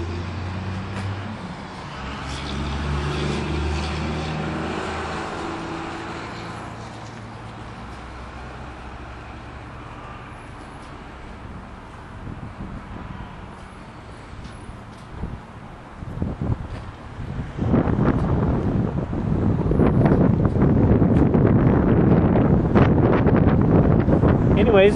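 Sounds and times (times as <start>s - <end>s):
vehicle engine hum: 0.0s - 24.9s.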